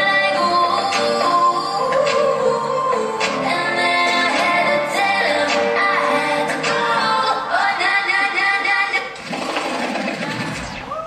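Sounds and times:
dance music: 0:00.0 - 0:11.0.

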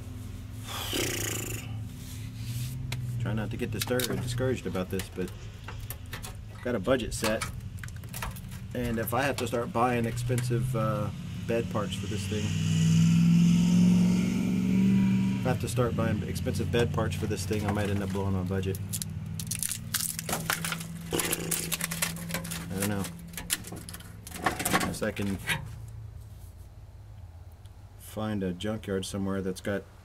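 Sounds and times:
steady low hum: 0:00.0 - 0:30.0
man sighing: 0:00.7 - 0:01.8
motor droning: 0:08.2 - 0:17.6.

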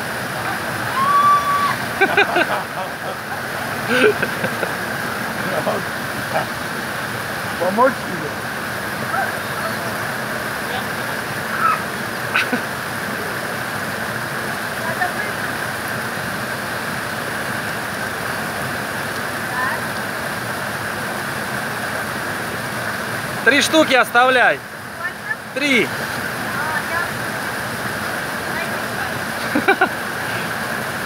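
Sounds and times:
water flowing: 0:00.0 - 0:31.0.

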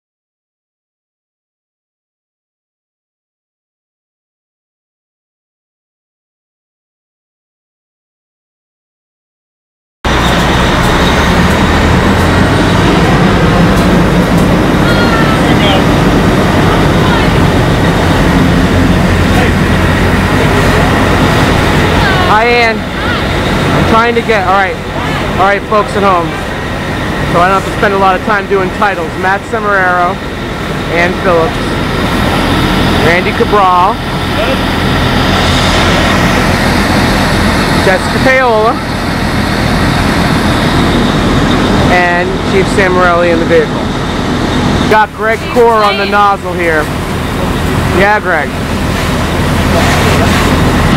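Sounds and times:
broad rushing noise: 0:10.1 - 0:50.9
diesel engine and pump running: 0:10.1 - 0:50.9
faint voices: 0:14.5 - 0:28.7, 0:44.9 - 0:48.6.

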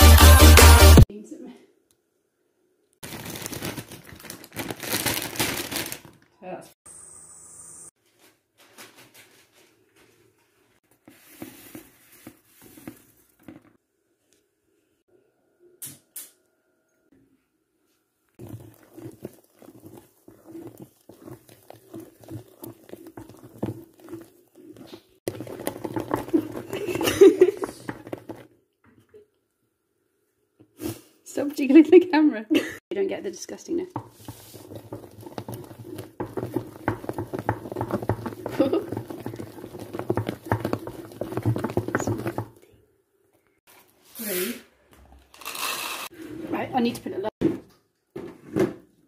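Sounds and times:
wet sticky squelching: 0:18.4 - 0:26.8
marshmallows tumbling into plastic bowl: 0:18.4 - 0:28.5, 0:34.0 - 0:42.6.

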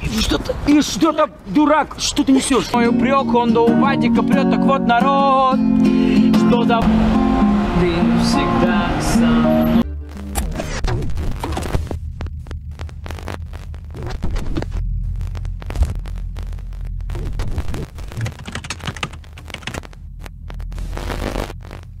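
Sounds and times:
low throbbing drone: 0:06.8 - 0:18.2, 0:19.2 - 0:22.0
glitchy static crackle and clicks: 0:09.9 - 0:22.0.

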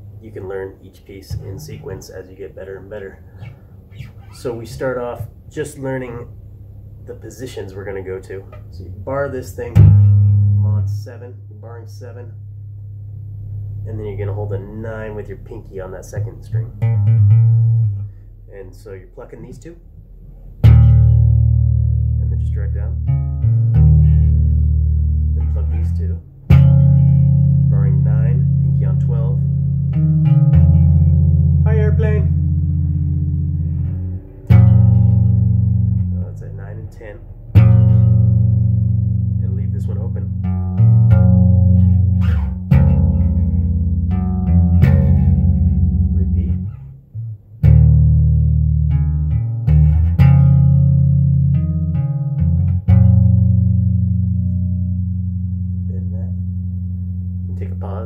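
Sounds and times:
electric bass guitar chords: 0:00.0 - 0:58.0.

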